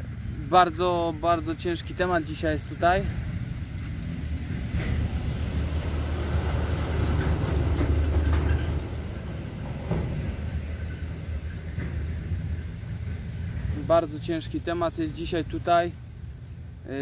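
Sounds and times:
dump truck engine rumble: 0.0 - 17.0.

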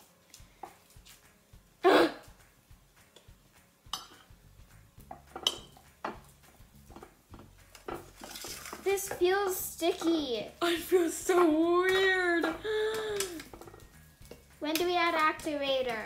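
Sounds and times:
utensils knocking and scraping glass dish: 5.0 - 10.3, 11.9 - 12.6, 13.2 - 15.5.

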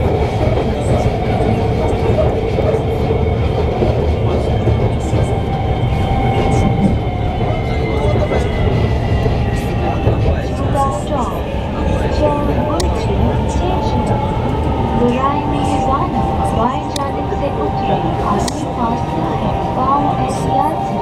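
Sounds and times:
metro train running on track: 0.0 - 21.0.

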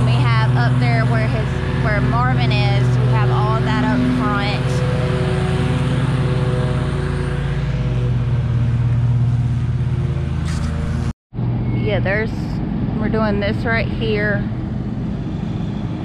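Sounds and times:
engine running: 0.0 - 16.0.

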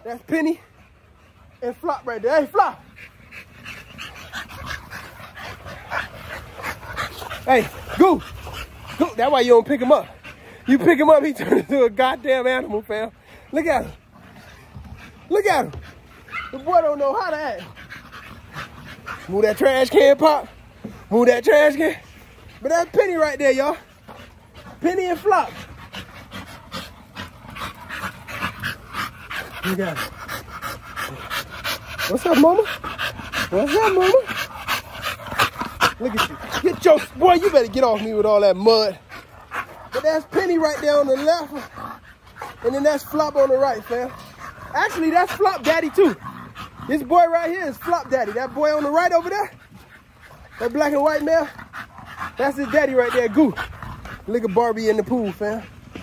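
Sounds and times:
dog panting: 0.0 - 56.0.

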